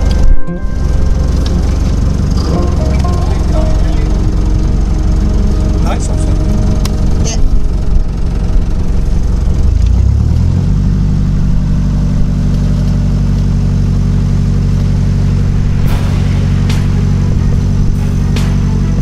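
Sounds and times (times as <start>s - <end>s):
boat diesel engine running: 0.0s - 19.0s.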